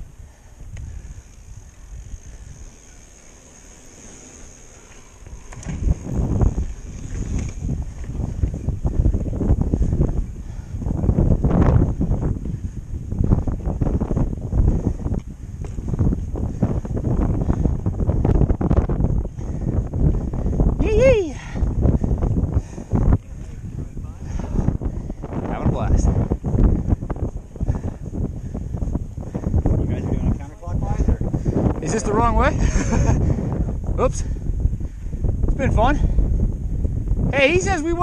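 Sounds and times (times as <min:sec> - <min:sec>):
wind on microphone: 0:00.0 - 0:38.0
bike rattles and knocks: 0:00.7 - 0:10.2, 0:11.0 - 0:20.7.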